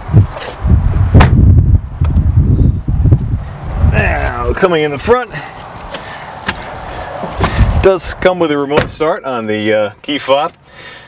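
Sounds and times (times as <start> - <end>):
dull low thump: 1.1 - 2.3, 7.2 - 7.8.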